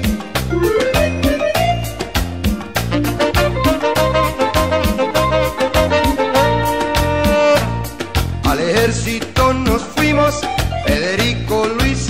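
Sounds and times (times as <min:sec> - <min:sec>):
cumbia music: 0:00.0 - 0:12.0.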